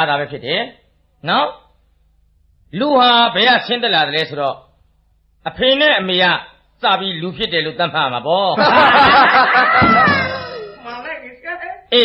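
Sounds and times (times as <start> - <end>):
people laughing together: 8.6 - 11.0.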